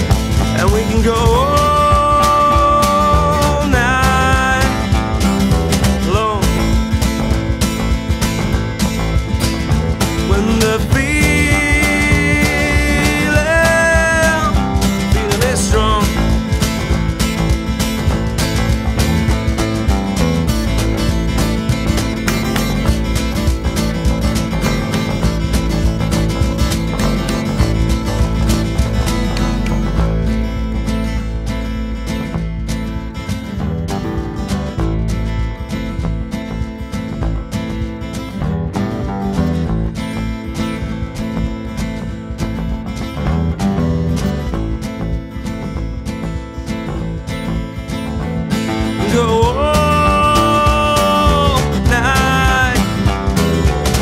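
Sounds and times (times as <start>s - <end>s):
electric bass guitar: 0.0s - 54.0s
guitar playing: 0.0s - 54.0s.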